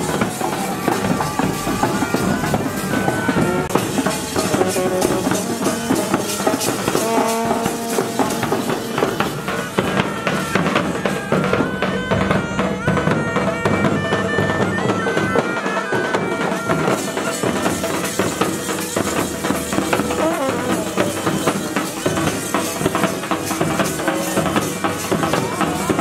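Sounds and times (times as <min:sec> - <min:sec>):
bagpipes playing: 0:00.0 - 0:26.0
drums beating: 0:00.0 - 0:26.0.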